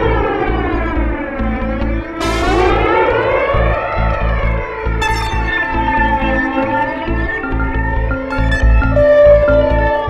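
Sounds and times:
siren-like synthesizer sweeps: 0:02.2 - 0:04.0, 0:05.0 - 0:10.0
electronic kick-drum pulse: 0:02.2 - 0:06.5.

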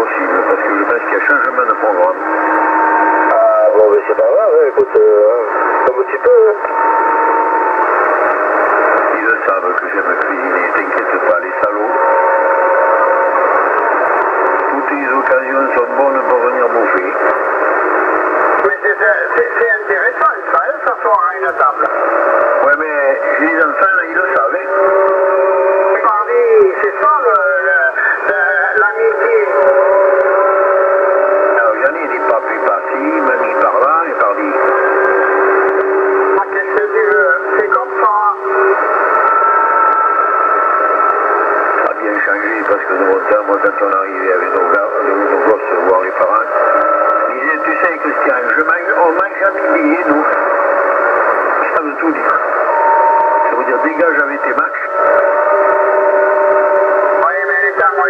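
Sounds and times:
radio noise: 0:00.0 - 0:58.0
voices over radio: 0:00.0 - 0:58.0.

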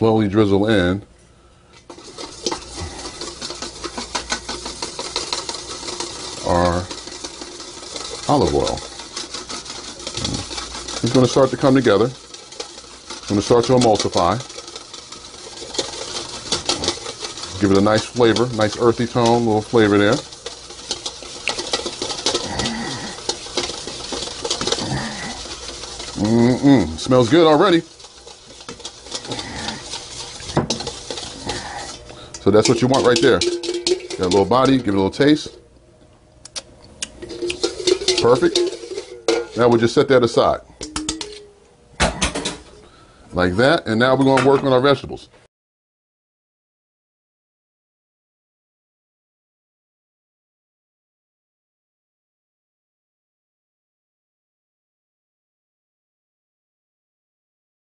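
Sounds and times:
whisk clicking against bowl: 0:01.8 - 0:35.6, 0:36.5 - 0:41.4
kitchen utensils clinking: 0:01.9 - 0:35.6, 0:37.0 - 0:42.8, 0:43.9 - 0:44.8.

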